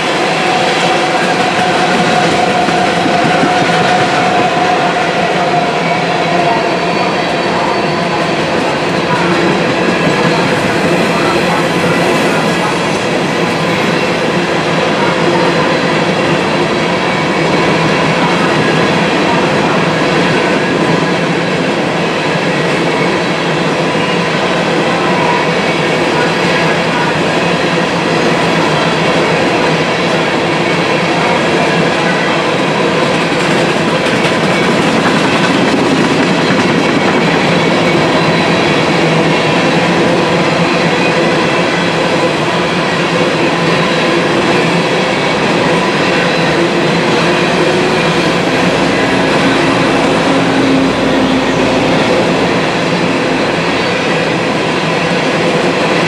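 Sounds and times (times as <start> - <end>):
freight train wheels rumbling on rails: 0.0 - 56.0
train wheels squealing: 0.3 - 14.4.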